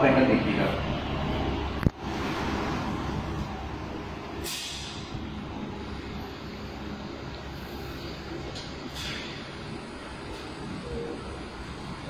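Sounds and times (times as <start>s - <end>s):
low gym hall rumble: 0.0s - 12.0s
short hiss: 4.4s - 5.0s.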